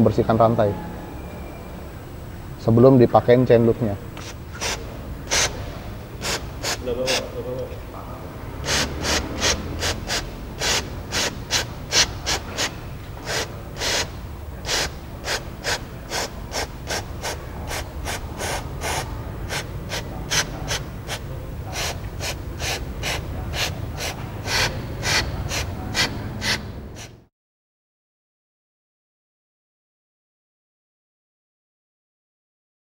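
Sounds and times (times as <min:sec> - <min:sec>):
aerosol spray hissing bursts: 0:04.2 - 0:05.6, 0:06.2 - 0:07.3, 0:08.6 - 0:27.2.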